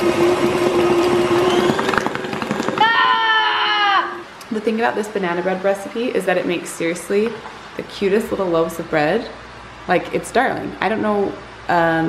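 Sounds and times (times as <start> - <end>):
electric mixer beating batter: 0.0 - 2.9
child's high drawn-out vocal sound: 2.8 - 4.3.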